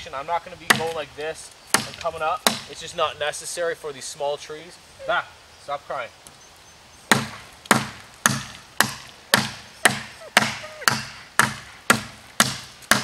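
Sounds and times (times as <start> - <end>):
axe chopping sapling: 0.6 - 1.1, 1.7 - 2.8, 7.1 - 13.0.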